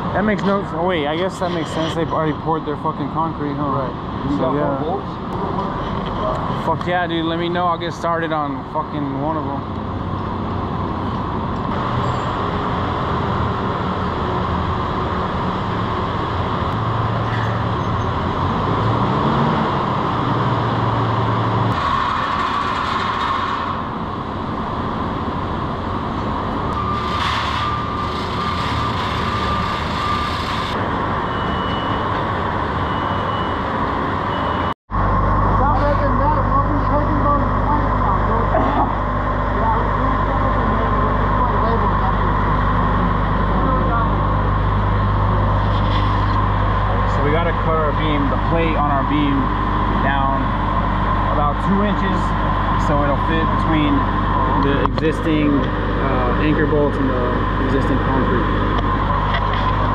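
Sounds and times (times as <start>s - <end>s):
industrial machinery drone: 0.0s - 59.9s.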